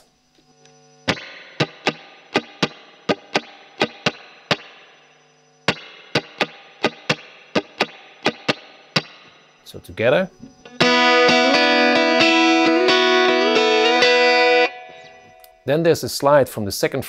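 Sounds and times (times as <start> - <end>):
electric guitar strumming: 1.1 - 5.0, 5.7 - 9.4, 10.5 - 15.6.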